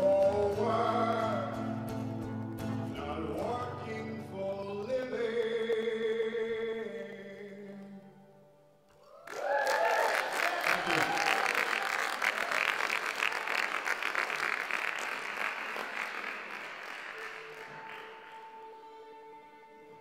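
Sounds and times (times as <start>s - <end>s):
whooping cheer: 9.0s - 14.2s
audience applause: 9.2s - 18.9s.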